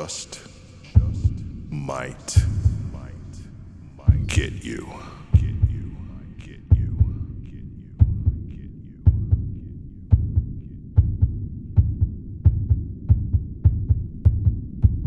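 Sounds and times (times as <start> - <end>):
heartbeat thumps: 1.0 - 3.4, 4.0 - 15.0.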